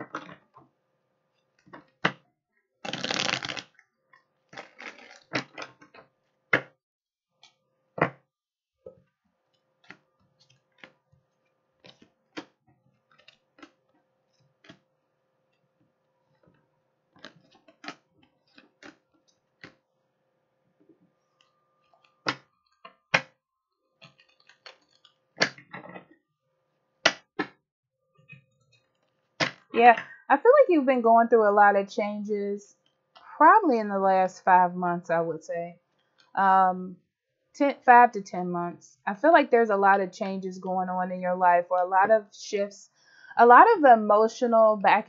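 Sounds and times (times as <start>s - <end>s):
cards riffle-shuffled: 2.8s - 3.7s, 4.5s - 5.4s.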